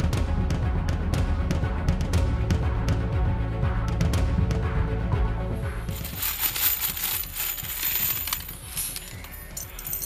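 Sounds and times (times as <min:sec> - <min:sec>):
metal screws clattering in plastic tub: 0:06.0 - 0:10.0.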